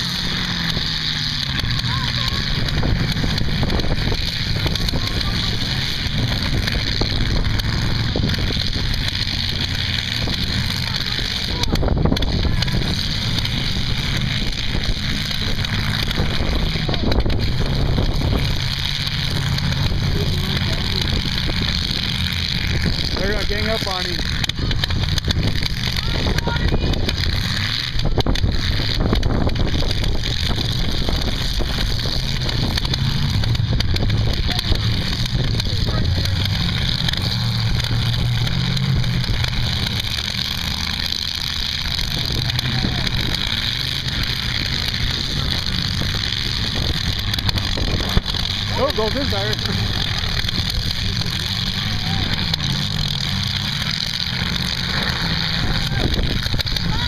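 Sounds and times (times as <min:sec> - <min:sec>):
car engines running loudly: 0:00.0 - 0:57.0
wind on microphone: 0:24.6 - 0:39.9.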